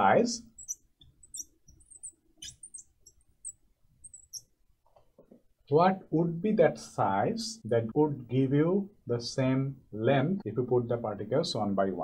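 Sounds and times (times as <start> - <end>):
marker squeaking on glass: 0.0 - 4.6.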